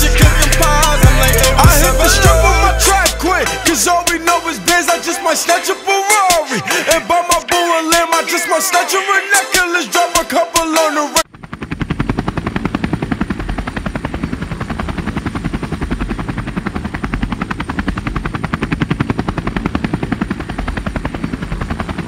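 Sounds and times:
drone propellers chopping: 0:00.0 - 0:08.3, 0:11.2 - 0:22.0
high motor whine: 0:00.0 - 0:10.0.

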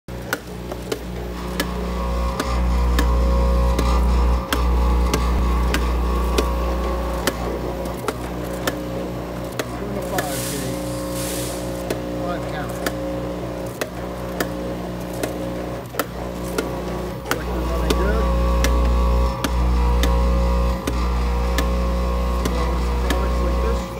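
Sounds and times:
vibratory feeder electric hum: 0:00.1 - 0:23.9
brief rushing hiss: 0:10.3 - 0:11.8.

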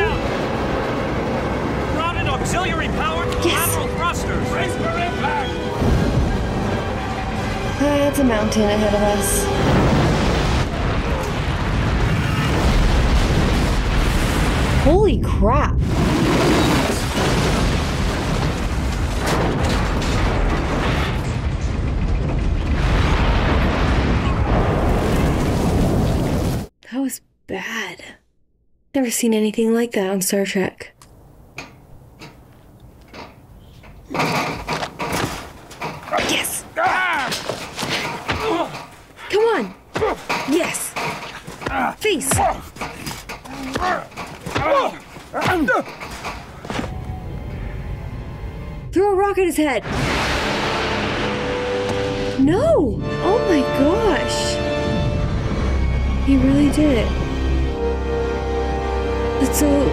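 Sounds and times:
heavy rumble and crashing: 0:00.0 - 0:26.7, 0:31.4 - 0:58.0
music: 0:01.9 - 0:10.0, 0:50.4 - 0:59.9
low rumble: 0:17.4 - 0:26.4.

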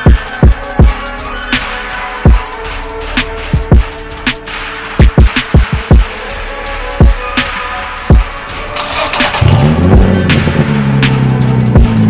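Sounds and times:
music with drum beat: 0:00.0 - 0:08.3, 0:09.4 - 0:12.0
car engine starting and idling: 0:08.4 - 0:12.0.

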